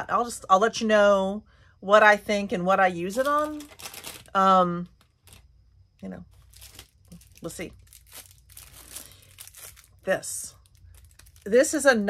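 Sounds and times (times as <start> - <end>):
plastic bag crinkling: 3.1 - 4.4, 5.0 - 5.4, 6.3 - 12.0.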